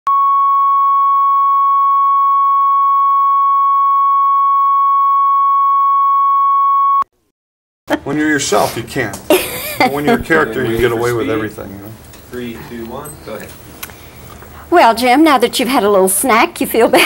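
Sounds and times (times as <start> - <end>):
steady test tone: 0.1 - 7.0.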